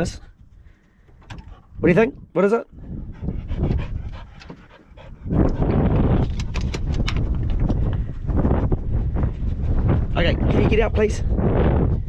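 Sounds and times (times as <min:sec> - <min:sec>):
dog panting: 0:02.8 - 0:06.3, 0:07.6 - 0:10.6.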